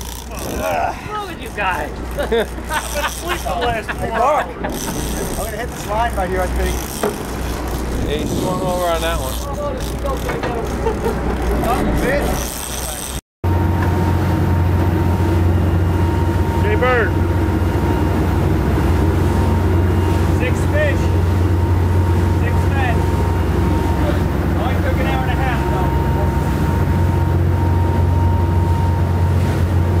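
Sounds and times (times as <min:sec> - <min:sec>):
boat engines droning: 0:00.0 - 0:30.0
wind: 0:00.0 - 0:30.0.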